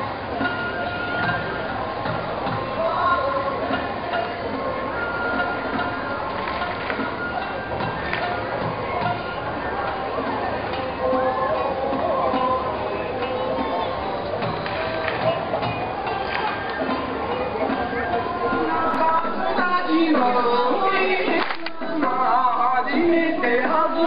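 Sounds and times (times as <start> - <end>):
music: 0.0 - 24.0
voices: 0.0 - 24.0.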